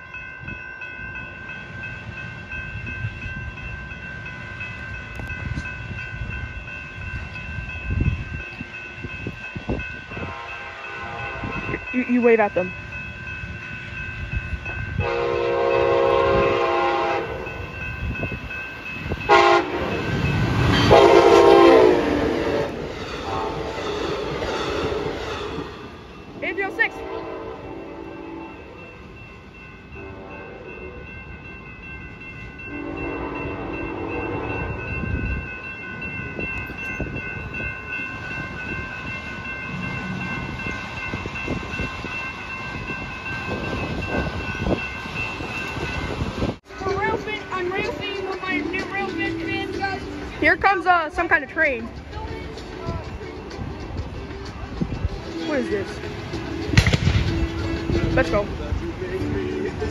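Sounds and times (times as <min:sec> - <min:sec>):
train rolling on rails: 0:00.0 - 0:59.9
train horn blasts: 0:10.2 - 0:11.8, 0:15.0 - 0:17.7, 0:19.3 - 0:20.1, 0:20.7 - 0:25.2, 0:26.4 - 0:28.8, 0:30.0 - 0:31.0, 0:32.7 - 0:34.8.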